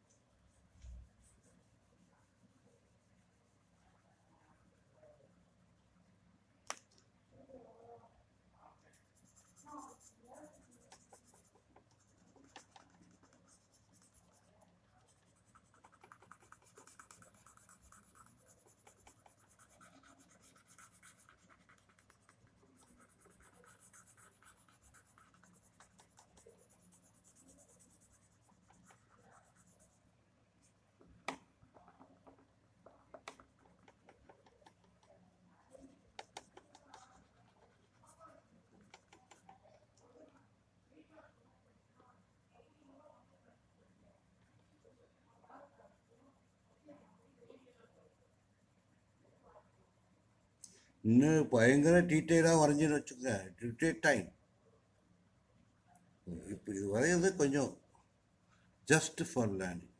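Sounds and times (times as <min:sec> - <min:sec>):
pencil shading on paper: 0:08.9 - 0:30.0, 0:35.7 - 0:39.5.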